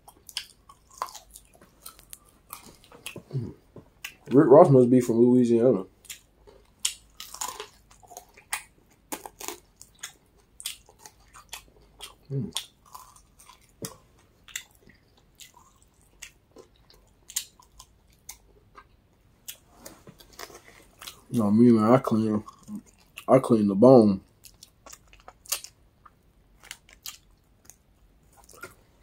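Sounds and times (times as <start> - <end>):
chewing and crunching: 0.0 - 4.4, 6.0 - 21.4, 22.0 - 23.5, 24.2 - 29.0.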